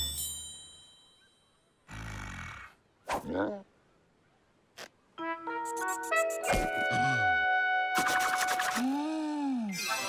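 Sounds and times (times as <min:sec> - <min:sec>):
music cues: 0:05.2 - 0:08.6
wavering vocal-like sound: 0:08.6 - 0:09.8.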